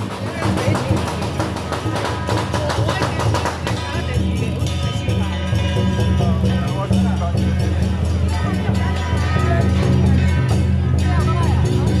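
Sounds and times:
drums and cymbals playing: 0.0s - 12.0s.

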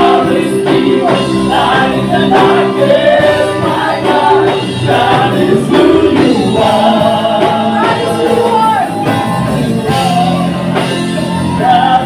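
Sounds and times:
live band playing worship song: 0.0s - 12.0s
singers singing together: 0.0s - 12.0s.

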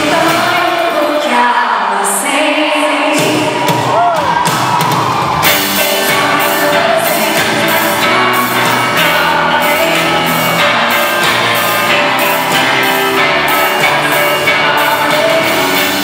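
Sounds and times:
woman singing with pop band: 0.0s - 4.2s, 5.5s - 16.0s
drums beating: 3.1s - 16.0s
crowd whooping: 3.2s - 9.0s, 9.8s - 15.8s.

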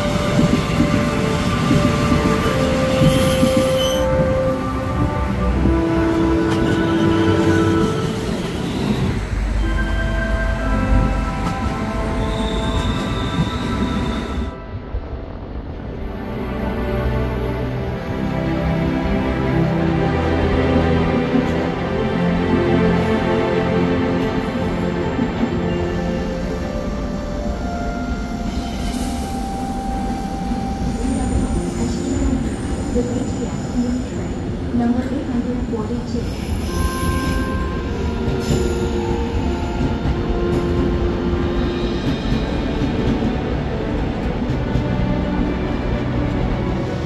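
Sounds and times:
train wheels rumbling: 0.0s - 47.0s
train wheel squeal: 0.3s - 4.3s, 6.5s - 14.6s, 28.0s - 34.5s, 35.8s - 43.2s.

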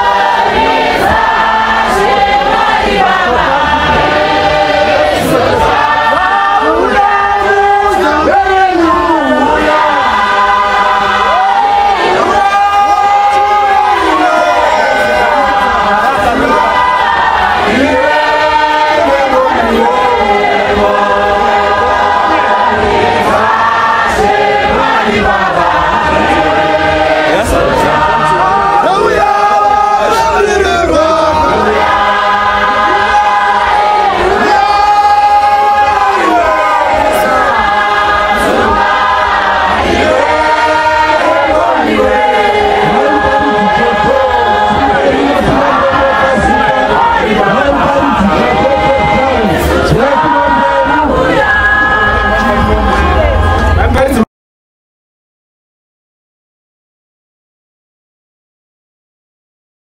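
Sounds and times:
congregation singing a hymn: 0.0s - 54.2s.

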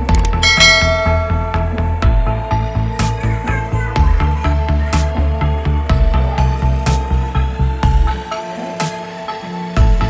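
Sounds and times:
electronic music with steady beat: 0.0s - 2.9s
bright bell chime: 0.3s - 2.0s.

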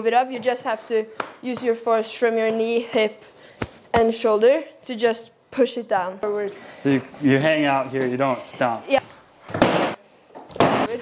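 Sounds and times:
skateboard smacking wooden ramp: 9.5s - 10.0s.

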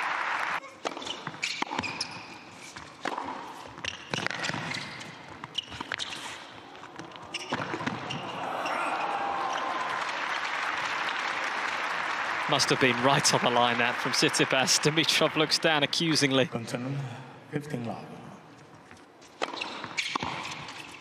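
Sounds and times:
audience applauding: 0.0s - 0.6s, 8.5s - 16.0s
shoes squeaking on court: 0.6s - 9.7s, 18.6s - 21.0s
tennis ball struck by racquets: 2.8s - 6.1s, 7.0s - 8.3s, 19.4s - 20.8s.

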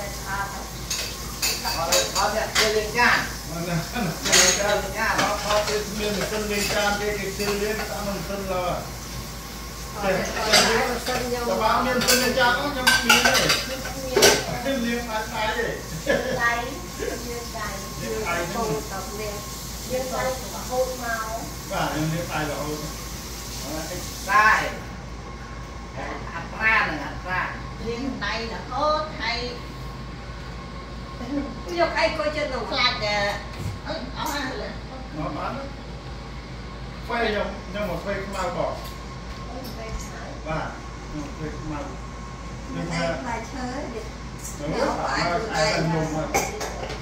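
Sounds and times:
running tap: 0.0s - 24.8s
dishes clattering in sink: 4.0s - 8.0s, 10.2s - 14.6s, 46.3s - 47.0s.

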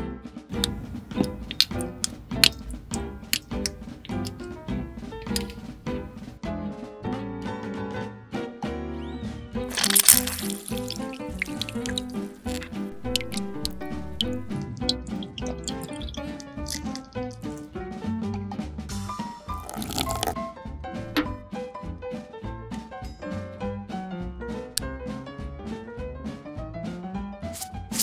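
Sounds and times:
background music with steady beat: 0.0s - 6.6s, 9.6s - 28.0s
liquid pouring into glass jug: 0.6s - 6.3s, 9.7s - 17.6s, 19.5s - 20.4s.

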